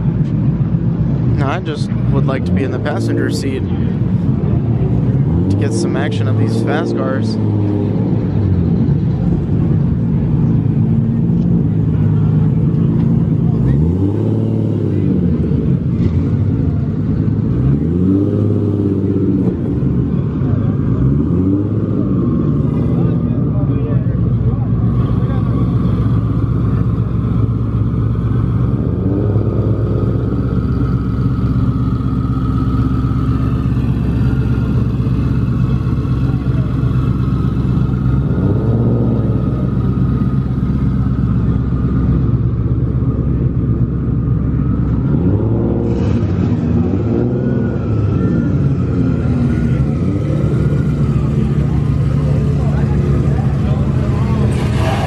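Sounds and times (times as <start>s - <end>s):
car engines idling and revving: 0.0s - 55.0s
crowd chatter: 0.0s - 55.0s.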